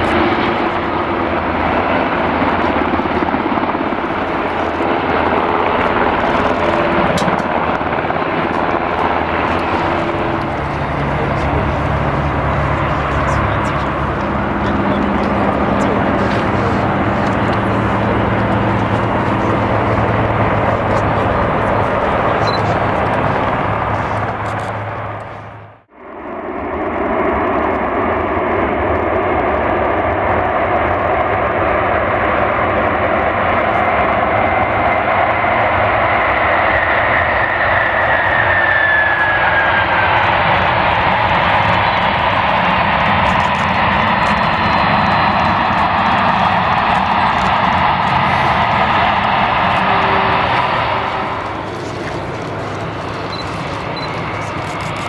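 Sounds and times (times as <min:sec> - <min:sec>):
jet engines running: 0:00.0 - 0:55.0.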